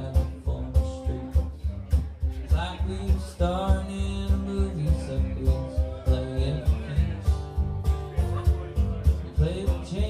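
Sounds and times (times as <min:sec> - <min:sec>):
acoustic guitar: 0:00.0 - 0:10.0
man singing: 0:00.0 - 0:10.0
upright bass beat: 0:00.0 - 0:10.0.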